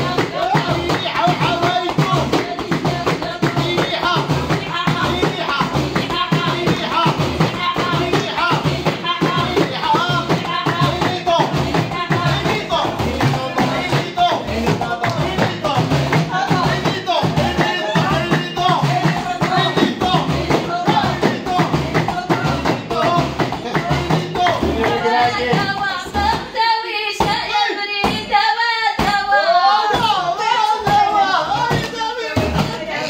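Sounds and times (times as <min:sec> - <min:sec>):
frame drums beating: 0:00.0 - 0:26.6, 0:30.8 - 0:33.0
women singing together: 0:00.0 - 0:33.0
hands clapping: 0:00.1 - 0:26.4.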